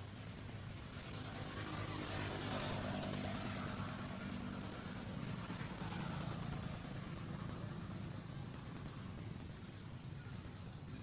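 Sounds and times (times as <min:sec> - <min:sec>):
engine running low hum: 0:00.0 - 0:11.0.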